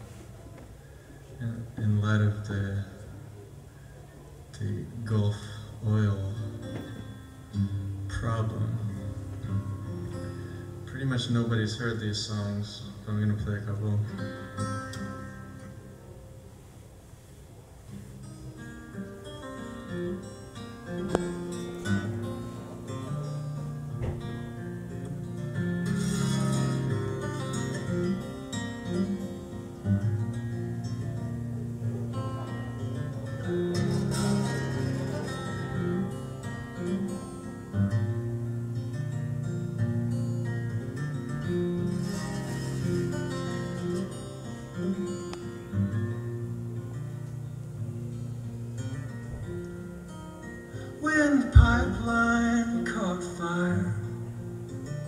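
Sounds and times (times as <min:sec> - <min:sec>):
acoustic plucked string instrument: 0:05.8 - 0:55.0.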